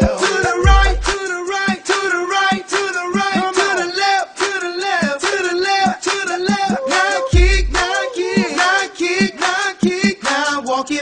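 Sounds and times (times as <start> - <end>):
dance music with sung vocals: 0.0 - 11.0.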